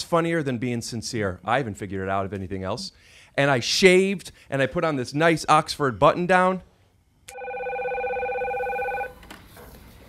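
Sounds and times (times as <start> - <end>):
desk phone electronic warble: 7.3 - 9.2.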